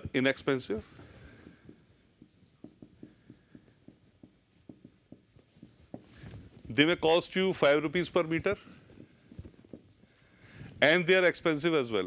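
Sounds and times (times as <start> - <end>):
man talking: 0.0 - 0.9, 6.7 - 8.7, 10.8 - 12.0
pen writing on a board: 0.5 - 11.2.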